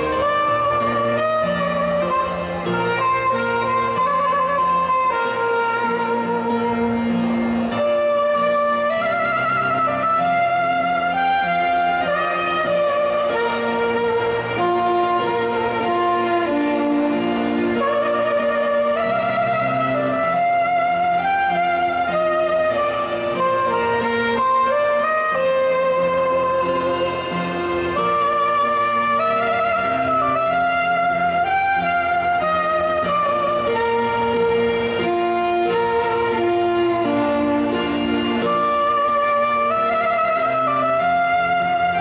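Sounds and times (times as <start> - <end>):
electronic keyboard accompaniment: 0.0 - 42.0
soprano saxophone melody: 0.0 - 42.0.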